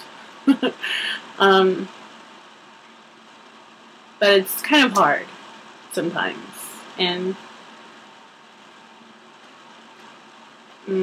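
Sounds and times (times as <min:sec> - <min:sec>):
faint background hiss: 0:00.0 - 0:11.0.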